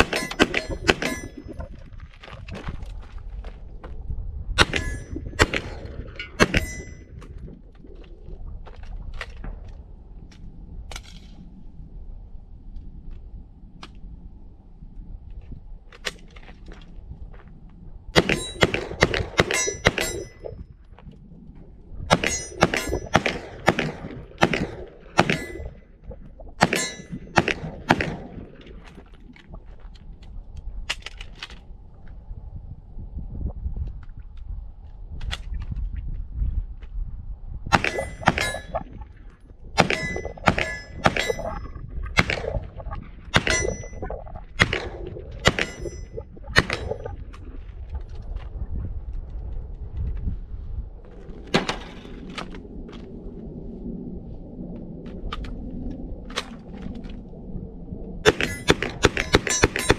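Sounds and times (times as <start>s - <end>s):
bullets clanging on steel target: 0.0s - 1.5s, 18.2s - 20.6s, 22.1s - 23.4s, 26.6s - 27.2s, 37.8s - 38.8s, 39.8s - 41.6s, 43.4s - 44.0s, 58.3s - 59.9s
pistol gunshots: 18.2s - 20.2s, 22.1s - 25.6s, 26.6s - 28.4s, 39.8s - 41.4s, 58.3s - 59.9s.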